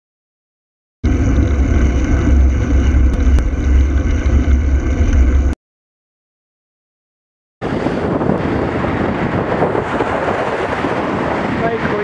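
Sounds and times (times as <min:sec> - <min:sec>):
road noise: 0:01.0 - 0:05.6, 0:07.6 - 0:12.0
wind buffeting microphone: 0:07.6 - 0:12.0.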